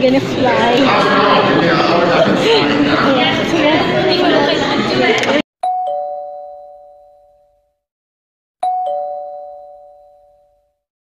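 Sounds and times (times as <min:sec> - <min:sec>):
two-note ding-dong chime: 0:05.6 - 0:07.6, 0:08.6 - 0:10.8.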